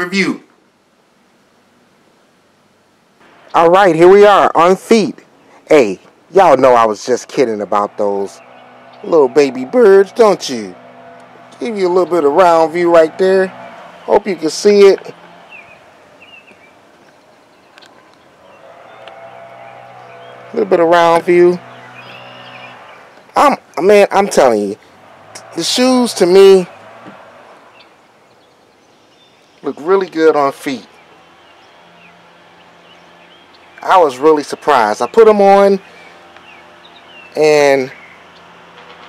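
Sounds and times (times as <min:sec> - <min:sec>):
distant bird chirps: 0:03.2 - 0:39.0
distant low hum: 0:03.2 - 0:39.0
man speaking: 0:03.6 - 0:08.4, 0:09.0 - 0:10.8, 0:11.6 - 0:15.2, 0:20.5 - 0:21.6, 0:23.4 - 0:24.8, 0:25.4 - 0:26.7, 0:29.6 - 0:30.9, 0:33.8 - 0:35.8, 0:37.4 - 0:38.0
small bird chirping: 0:15.4 - 0:20.6, 0:21.6 - 0:23.4, 0:30.8 - 0:39.0.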